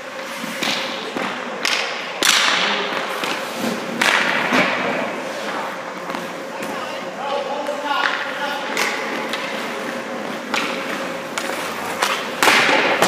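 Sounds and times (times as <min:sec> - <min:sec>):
skate blades scraping ice: 0:00.0 - 0:01.2, 0:08.2 - 0:13.0.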